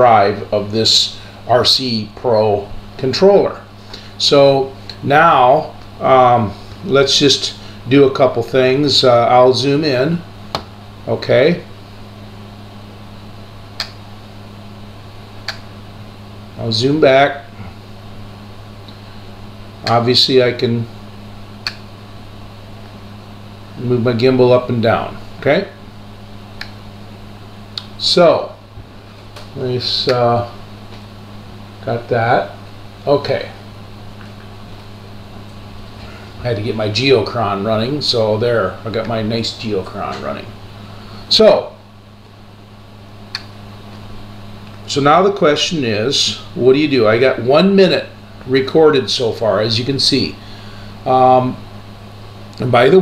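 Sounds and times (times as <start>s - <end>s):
low hum of room equipment: 0.0s - 53.0s.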